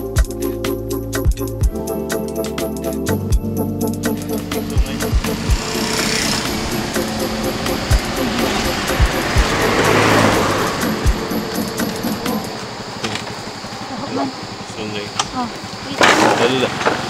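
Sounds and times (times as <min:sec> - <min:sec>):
background music: 0:00.0 - 0:13.0
road noise: 0:03.8 - 0:17.0
motor vehicle passing by: 0:04.2 - 0:17.0.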